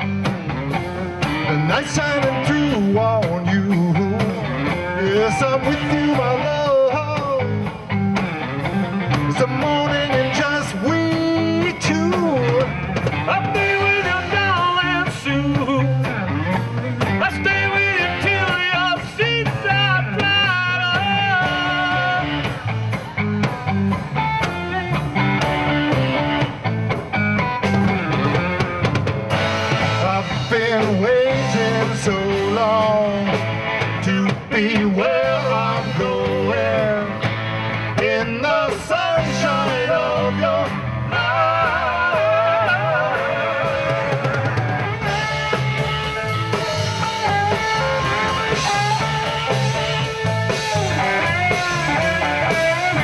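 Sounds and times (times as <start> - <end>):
electric guitar lead bending pitch: 0.0 - 53.0
rock band playing: 0.0 - 53.0.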